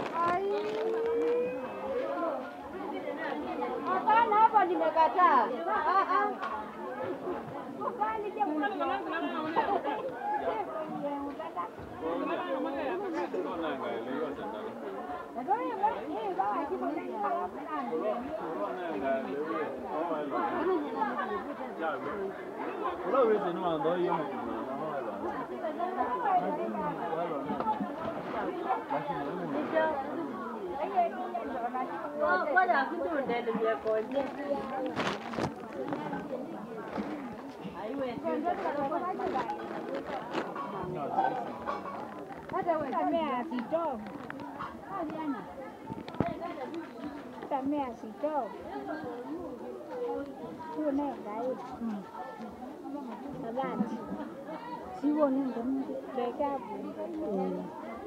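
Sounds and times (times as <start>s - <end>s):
market chatter: 0.0s - 58.0s.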